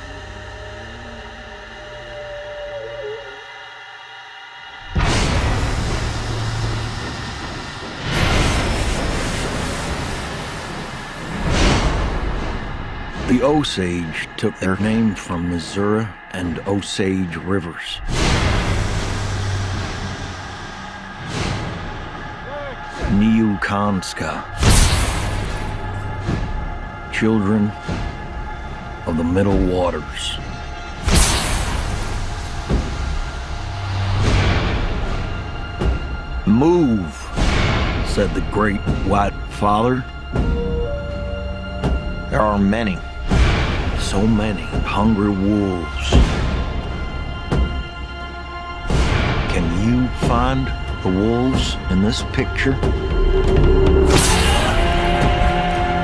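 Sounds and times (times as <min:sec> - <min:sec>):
low rumble: 0:04.0 - 0:56.0
steam hissing: 0:04.8 - 0:14.1
burst of steam: 0:05.0 - 0:12.6, 0:31.0 - 0:34.7.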